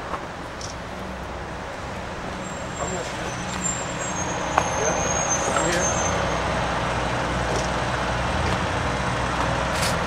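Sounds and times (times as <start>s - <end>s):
street traffic noise: 0.0s - 10.0s
thin high squeal: 2.4s - 6.2s.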